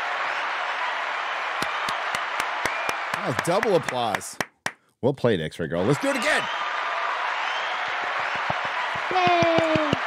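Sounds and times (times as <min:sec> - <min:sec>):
crowd applause: 0:00.0 - 0:04.4, 0:05.8 - 0:10.0.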